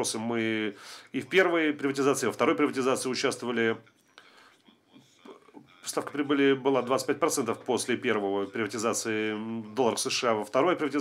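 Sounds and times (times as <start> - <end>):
man speaking: 0.0 - 3.9, 4.9 - 11.0.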